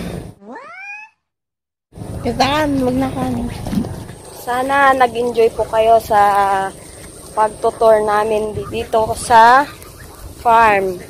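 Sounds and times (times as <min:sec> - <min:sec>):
outdoor background noise: 0:00.0 - 0:01.0, 0:01.9 - 0:11.0.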